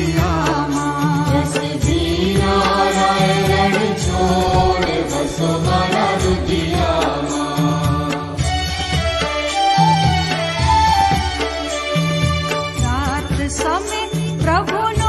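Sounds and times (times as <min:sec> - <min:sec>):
chanted devotional singing: 0:00.0 - 0:10.3.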